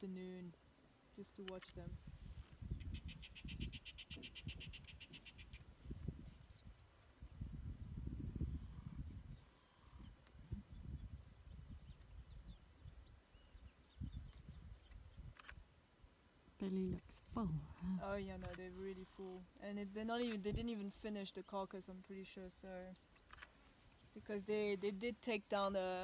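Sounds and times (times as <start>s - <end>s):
wind rumble on microphone: 1.8s - 15.6s, 20.4s - 20.7s.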